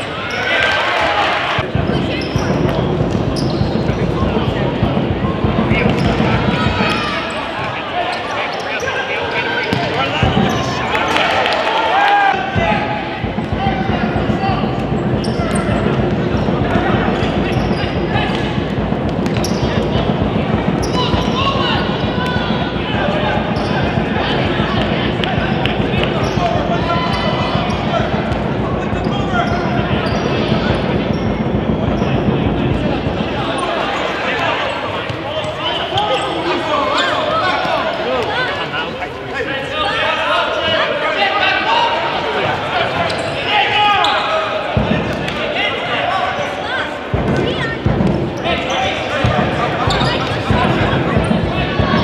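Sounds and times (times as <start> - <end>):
people shouting and calling: 4.0 - 52.0.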